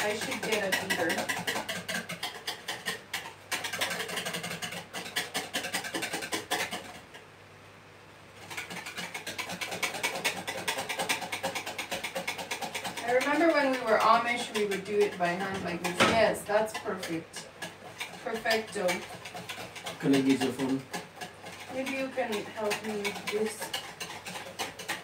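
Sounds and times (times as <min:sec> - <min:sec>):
whisk clicking against bowl: 0:00.0 - 0:07.2, 0:08.4 - 0:25.0.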